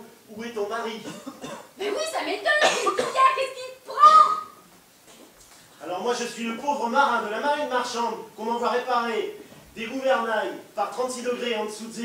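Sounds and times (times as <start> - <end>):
man speaking: 0.0 - 1.6, 5.8 - 12.0.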